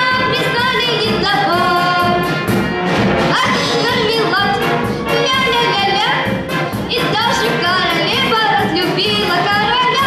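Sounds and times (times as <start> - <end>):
girl singing into a microphone: 0.0 - 2.1
brass band playing: 0.0 - 10.0.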